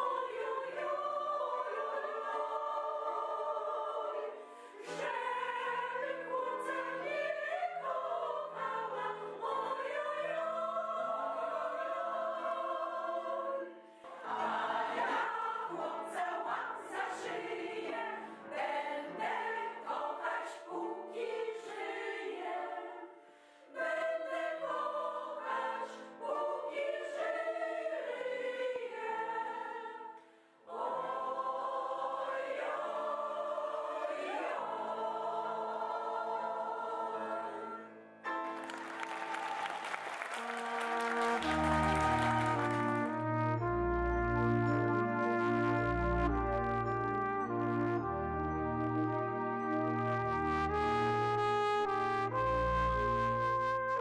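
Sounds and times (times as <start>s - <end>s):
mixed choir singing in parts: 0.0s - 38.0s, 40.3s - 51.4s.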